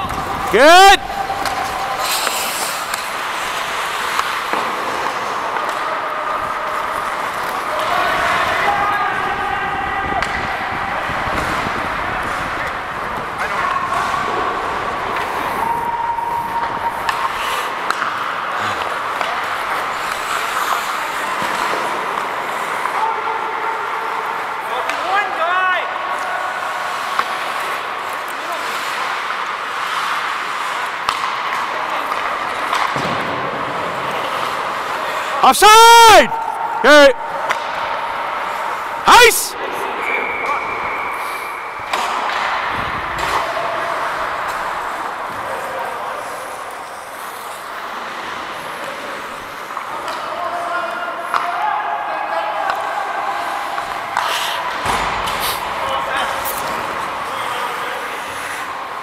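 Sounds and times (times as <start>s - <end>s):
skates scraping on ice: 0.0s - 35.4s, 36.3s - 51.6s, 52.2s - 59.0s
hockey sticks and puck clacking: 0.0s - 59.0s
players calling out: 33.9s - 47.5s
trilling whistle: 40.0s - 41.9s.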